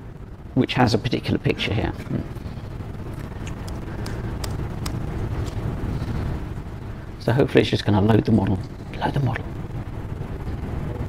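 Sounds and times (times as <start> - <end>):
low room hum: 0.0 - 11.0
laptop keys clicking: 3.3 - 5.6.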